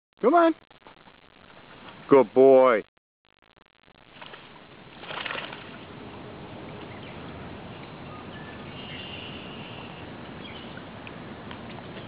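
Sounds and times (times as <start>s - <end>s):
creek water splashing: 4.0s - 12.0s
loud splash: 4.1s - 6.0s.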